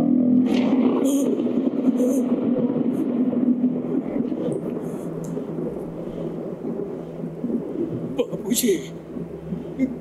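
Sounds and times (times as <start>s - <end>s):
constant low hum: 0.0s - 10.0s
low rumbling ambience: 0.0s - 10.0s.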